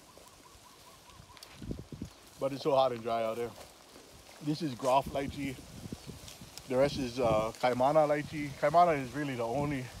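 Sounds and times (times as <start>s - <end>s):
bird calling: 0.0s - 2.3s.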